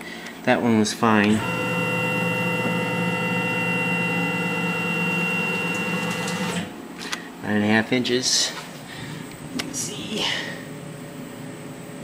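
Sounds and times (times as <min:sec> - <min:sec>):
mill axis drive whine: 0:01.1 - 0:07.0.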